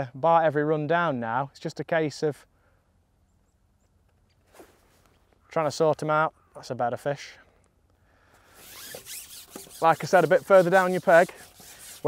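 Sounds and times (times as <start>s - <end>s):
fishing pole rubbing rasp: 8.5s - 12.0s.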